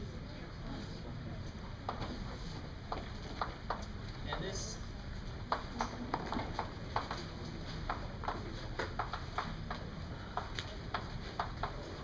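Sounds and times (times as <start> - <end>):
chalk tapping and scratching: 7.8 - 12.0.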